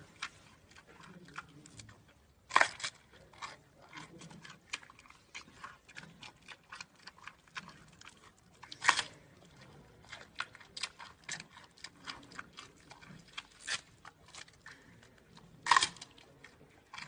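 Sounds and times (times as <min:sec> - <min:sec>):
panda chewing bamboo crunches: 0:00.0 - 0:17.0.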